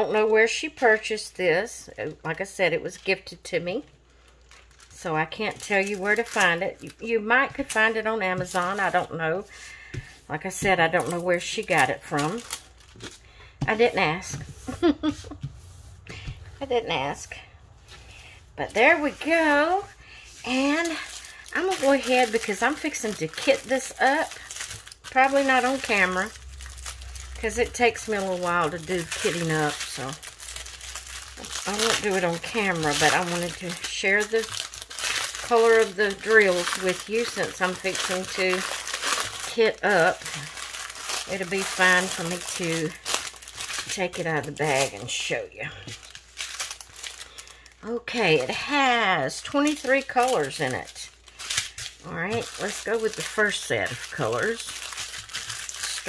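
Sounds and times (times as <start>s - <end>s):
woman talking: 0.0s - 3.9s, 5.0s - 9.6s, 10.2s - 12.6s, 13.6s - 15.4s, 16.6s - 17.5s, 18.6s - 26.4s, 27.3s - 30.2s, 31.4s - 34.6s, 35.3s - 40.6s, 41.2s - 43.0s, 43.9s - 46.0s, 47.8s - 51.2s, 52.0s - 54.8s, 55.8s - 56.0s
plastic packaging crinkling: 2.3s - 15.4s, 17.1s - 56.0s.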